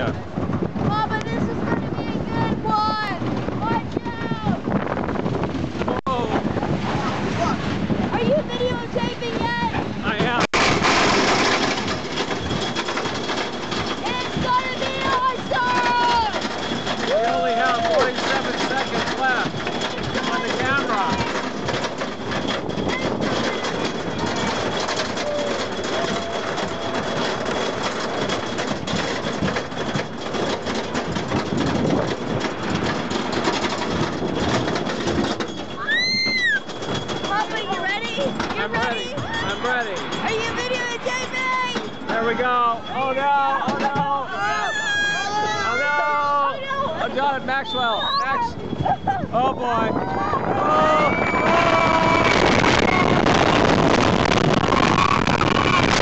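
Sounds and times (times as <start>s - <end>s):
roller coaster rattling on track: 0.0s - 56.0s
wind buffeting microphone: 0.0s - 56.0s
riders crying out: 35.7s - 36.8s, 44.2s - 47.0s, 47.8s - 56.0s.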